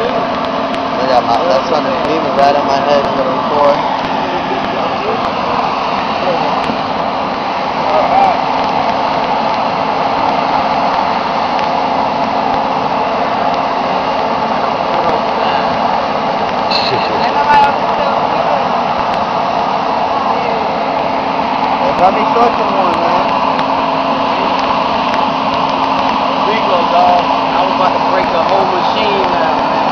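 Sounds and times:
indistinct voices talking: 0:00.0 - 0:29.9
mechanical drone with low hum: 0:00.0 - 0:29.9.

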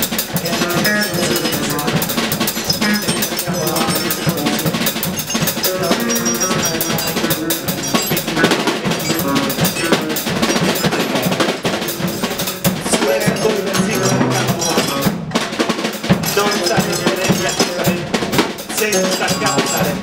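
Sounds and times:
drum kit playing: 0:00.0 - 0:20.0
man speaking into a microphone: 0:00.4 - 0:04.8, 0:05.6 - 0:11.7, 0:12.7 - 0:15.2, 0:16.2 - 0:20.0.

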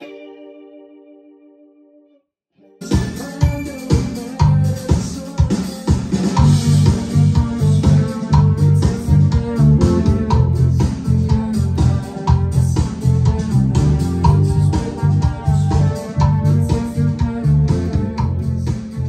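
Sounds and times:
electric guitars: 0:02.7 - 0:19.0
bass line: 0:02.8 - 0:19.0
steady drum beat: 0:02.8 - 0:19.0.

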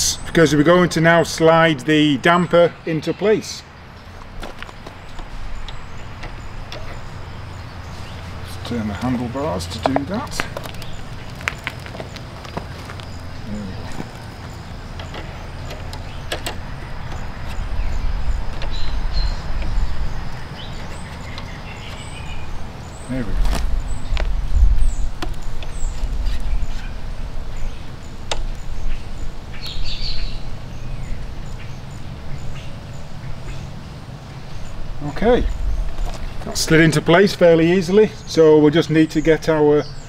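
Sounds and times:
low outdoor rumble: 0:03.6 - 0:40.0
sharp clicks of metal parts: 0:15.0 - 0:17.6.

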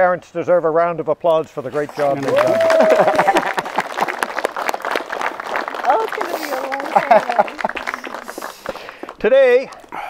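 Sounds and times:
voices: 0:01.4 - 0:03.9, 0:05.6 - 0:09.8
crowd applauding: 0:01.8 - 0:10.0
laughter: 0:02.5 - 0:04.1, 0:06.4 - 0:08.0.

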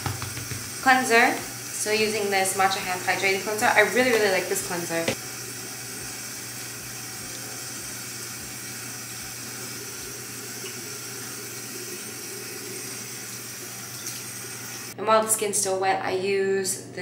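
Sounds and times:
sink tap running: 0:00.0 - 0:15.0.

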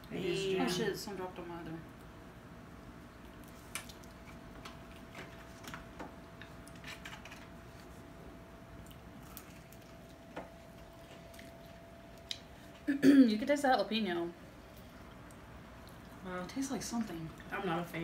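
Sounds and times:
faint steady hum: 0:00.0 - 0:18.0
people chewing chicken wings: 0:08.7 - 0:12.8.

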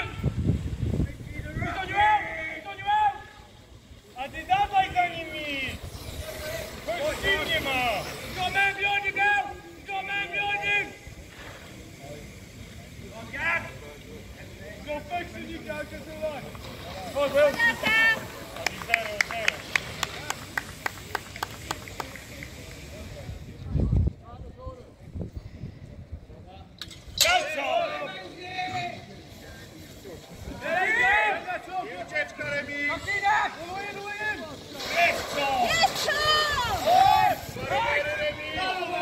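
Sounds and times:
people calling and shouting: 0:00.0 - 0:39.0.

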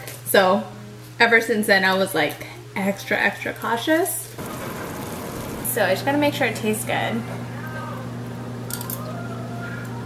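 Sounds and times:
steady low hum: 0:04.4 - 0:10.0.

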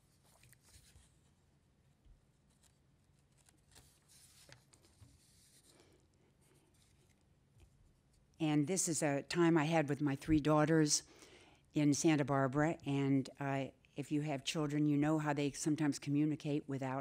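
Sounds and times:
paper sheets rustling: 0:00.0 - 0:01.4, 0:02.4 - 0:07.2.

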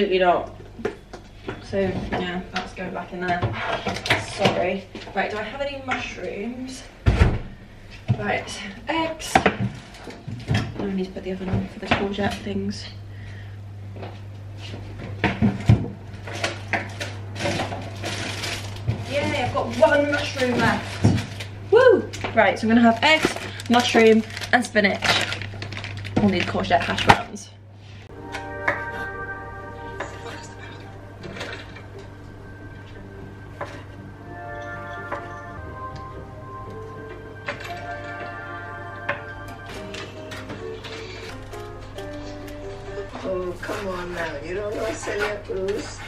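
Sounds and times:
oven fan motor humming: 0:00.0 - 0:27.6, 0:35.6 - 0:46.0
background music sustained notes: 0:28.1 - 0:46.0.

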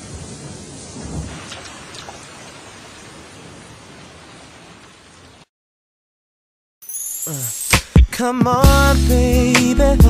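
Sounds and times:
rain hissing: 0:00.0 - 0:05.5.

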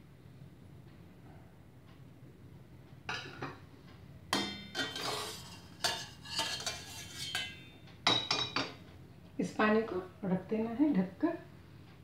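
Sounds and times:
metal strainer clinking on saucepan: 0:04.4 - 0:08.7.

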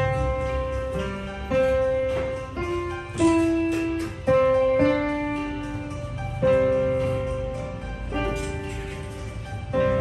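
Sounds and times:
digital piano played slowly: 0:00.0 - 0:10.0.

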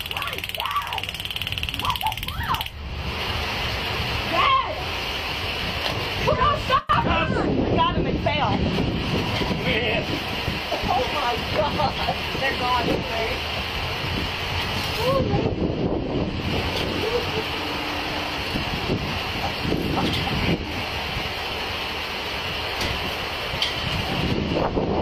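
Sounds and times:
steady rushing noise: 0:00.0 - 0:25.0.

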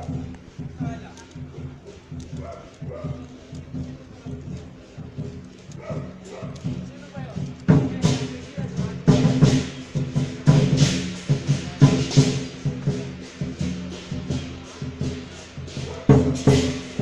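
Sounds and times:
drum cymbals and gong percussion: 0:00.0 - 0:17.0.

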